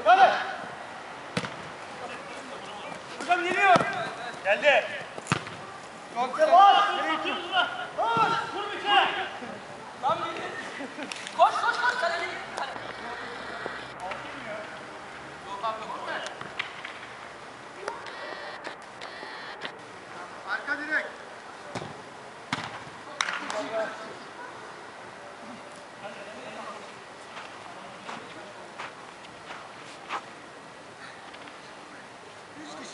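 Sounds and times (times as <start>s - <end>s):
ball kick thuds: 1.4s - 1.7s, 3.7s - 4.1s, 5.0s - 5.6s, 21.7s - 22.9s
players shouting: 2.0s - 5.1s, 6.1s - 10.5s.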